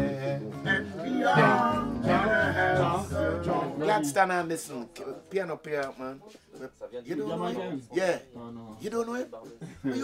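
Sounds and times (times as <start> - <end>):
man singing: 0.0 - 4.3.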